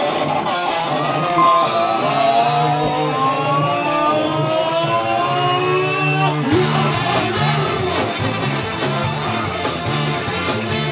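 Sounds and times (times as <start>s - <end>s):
sustained notes gliding upward: 1.4s - 3.3s.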